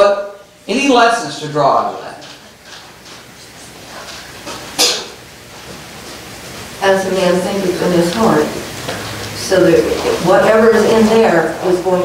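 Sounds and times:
man speaking: 0:00.0 - 0:02.3
faint room tone hiss: 0:00.0 - 0:12.0.

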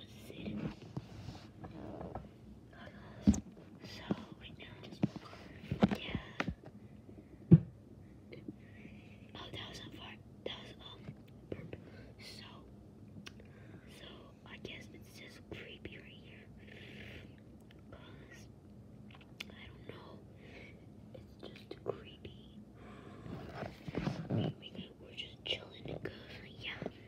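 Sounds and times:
person whispering: 0:00.0 - 0:00.8, 0:02.7 - 0:06.6, 0:09.3 - 0:12.7, 0:13.9 - 0:16.6, 0:17.9 - 0:18.5, 0:19.4 - 0:20.2, 0:21.2 - 0:22.6, 0:24.2 - 0:27.0.

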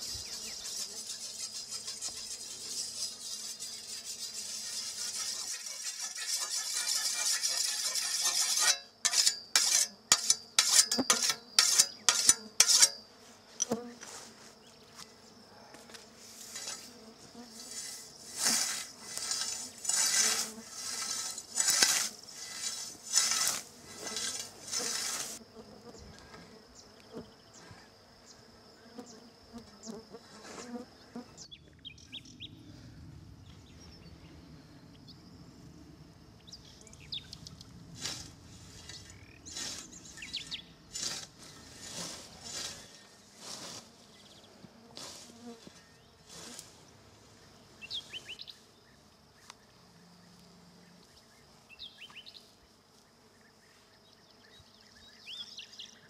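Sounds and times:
high insect buzz: 0:00.0 - 0:32.8, 0:33.4 - 0:56.0
whetstone stroking scythe blade: 0:04.3 - 0:13.0, 0:17.7 - 0:25.4
scythe swishing through grass: 0:16.3 - 0:25.4, 0:37.9 - 0:44.1, 0:45.0 - 0:46.8.

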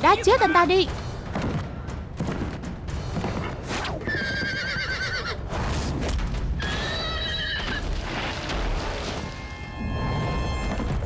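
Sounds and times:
horse whinnying: 0:04.0 - 0:05.5, 0:06.6 - 0:08.0.

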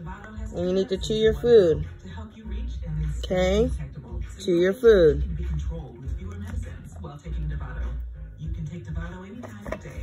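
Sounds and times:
television music with voices: 0:00.0 - 0:10.0.

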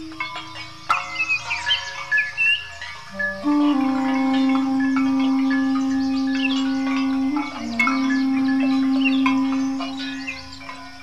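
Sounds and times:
birds chirping faintly: 0:00.0 - 0:11.0
duduk holding long note: 0:03.1 - 0:10.3.

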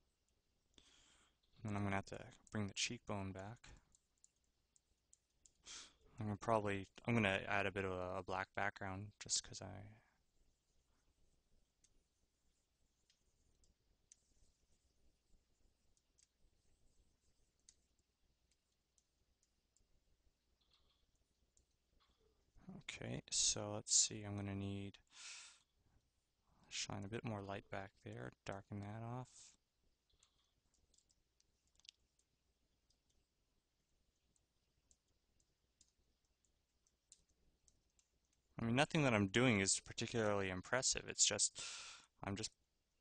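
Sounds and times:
faint clicks: 0:13.0 - 0:22.7, 0:26.9 - 0:39.2.

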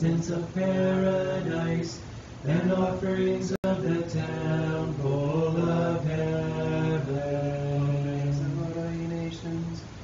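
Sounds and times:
voices chanting a hymn: 0:00.0 - 0:09.9.

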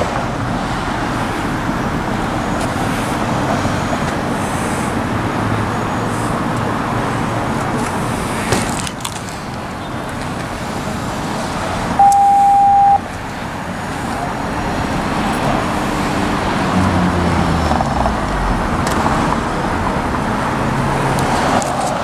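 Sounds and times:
cars passing: 0:00.0 - 0:22.0
high electronic beep: 0:12.0 - 0:13.0.

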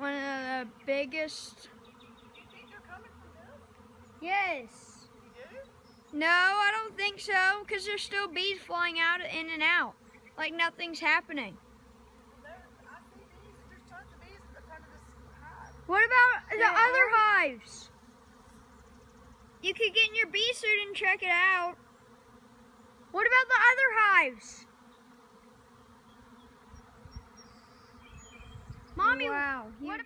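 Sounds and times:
honeybees buzzing: 0:00.0 - 0:30.0.

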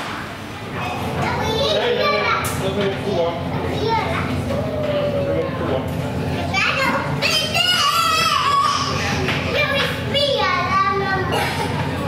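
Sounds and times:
steady low hum: 0:00.0 - 0:12.0
children's voices: 0:00.6 - 0:12.0
child calling out: 0:07.2 - 0:09.0.

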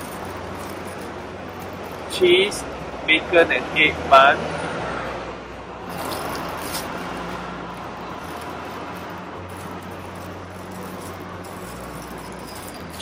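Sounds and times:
plastic bag crinkling: 0:00.0 - 0:02.2, 0:05.9 - 0:07.1, 0:07.8 - 0:13.0
low traffic hum: 0:00.0 - 0:13.0.

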